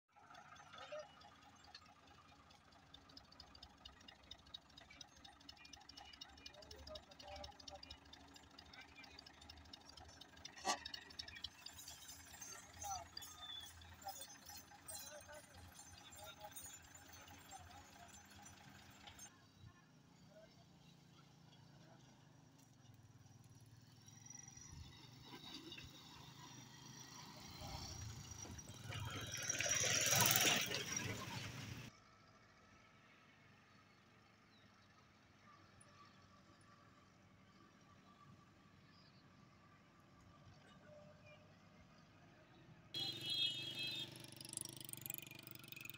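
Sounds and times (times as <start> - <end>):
tractor engine hum: 0.2 - 41.7, 43.0 - 45.9.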